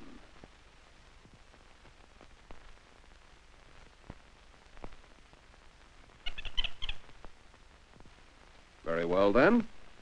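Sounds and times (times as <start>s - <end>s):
monkey chattering squeaks: 6.2s - 7.0s.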